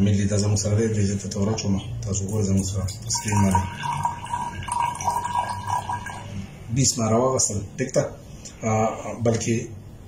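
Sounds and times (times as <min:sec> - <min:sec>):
liquid trickling into cylinder: 0:02.2 - 0:06.7.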